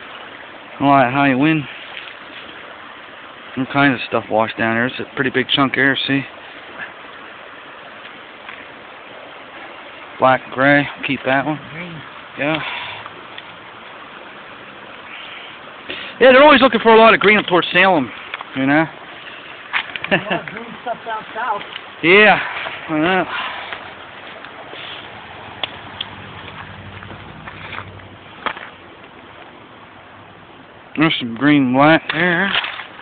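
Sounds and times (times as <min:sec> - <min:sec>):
creek water rushing: 0:00.0 - 0:33.0.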